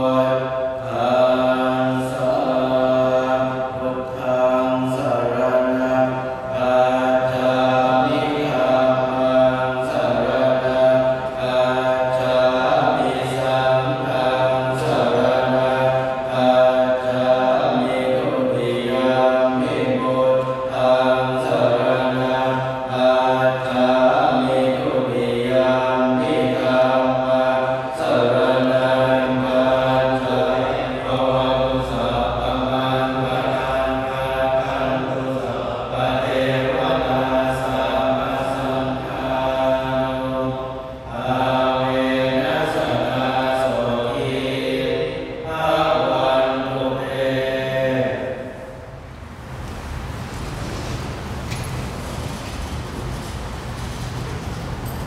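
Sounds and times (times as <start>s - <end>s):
monks chanting over loudspeaker: 0.0s - 55.0s.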